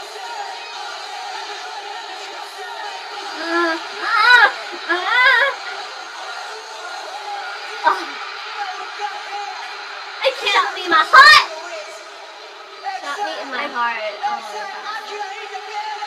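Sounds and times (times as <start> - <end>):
concert crowd noise: 0.0 - 16.0
woman squealing excitedly: 3.4 - 5.6.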